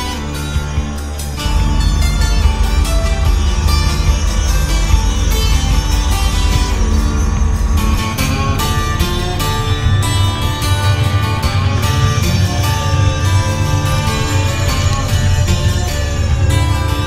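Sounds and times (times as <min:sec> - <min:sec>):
music with heavy bass line: 0:00.0 - 0:17.0.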